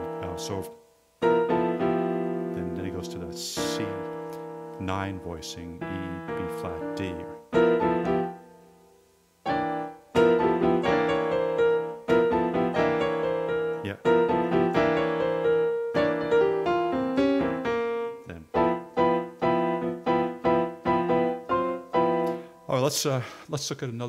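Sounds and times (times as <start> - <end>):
jazz piano chords: 0.0 - 22.9.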